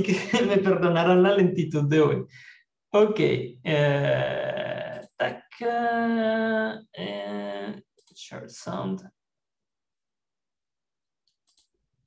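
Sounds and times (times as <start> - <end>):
faint clicks: 11.2 - 11.8.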